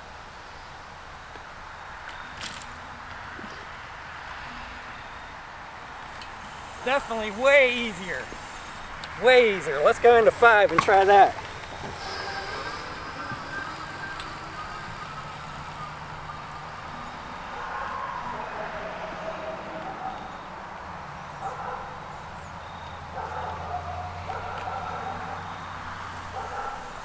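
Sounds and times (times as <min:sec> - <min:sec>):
electric motor whine: 0:04.4 - 0:21.4.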